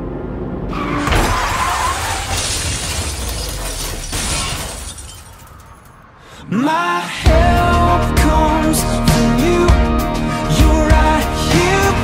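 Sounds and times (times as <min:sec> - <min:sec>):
glass shattering: 0:01.0 - 0:06.0.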